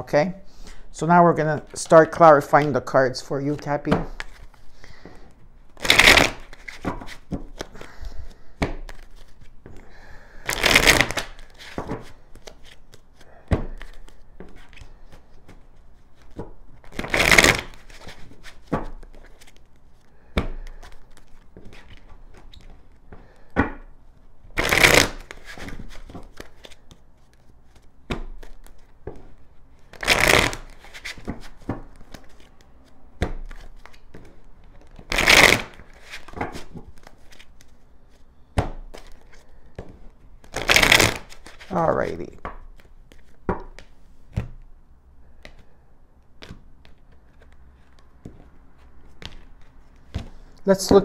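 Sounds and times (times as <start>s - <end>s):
cards being shuffled: 3.4s - 4.6s, 5.7s - 9.8s, 10.5s - 23.1s, 24.5s - 44.6s, 45.3s - 51.0s.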